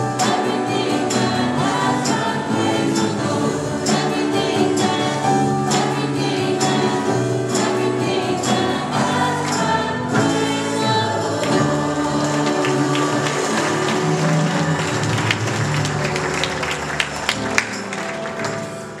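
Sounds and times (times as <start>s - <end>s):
worship band with singers: 0.0s - 19.0s.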